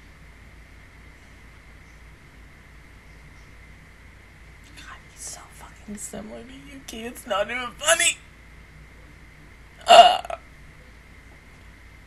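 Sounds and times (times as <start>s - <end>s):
woman's short vocal sound: 9.8s - 10.4s.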